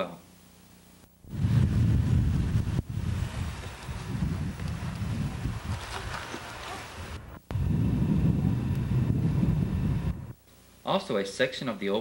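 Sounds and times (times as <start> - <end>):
wind rumble on microphone: 1.3 - 10.4.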